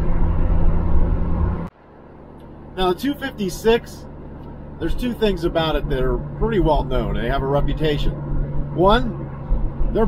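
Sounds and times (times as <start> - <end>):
car engine drone inside cabin: 0.0 - 10.0
road noise: 0.0 - 10.0.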